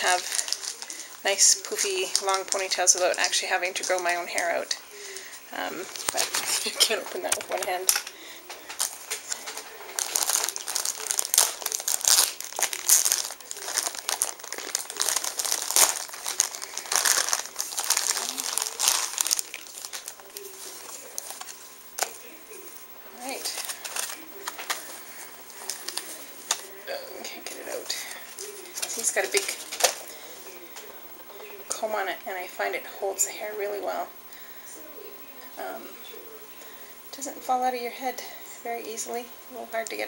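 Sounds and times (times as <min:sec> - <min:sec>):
plastic bag crinkling: 0:00.0 - 0:31.6.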